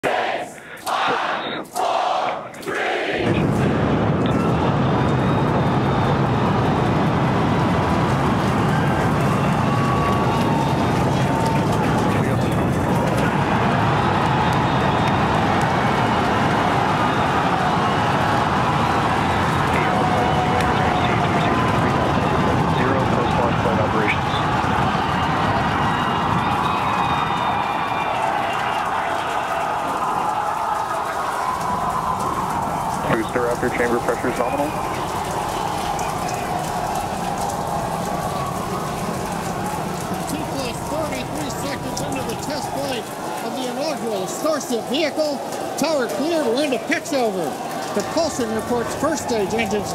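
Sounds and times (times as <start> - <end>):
people cheering and shouting: 0.0 - 49.9
rocket engines roaring: 2.4 - 49.9.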